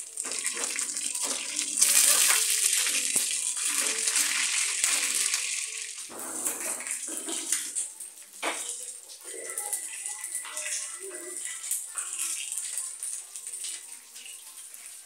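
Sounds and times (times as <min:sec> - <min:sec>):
chicken sizzling in hot oil: 0:00.0 - 0:15.0.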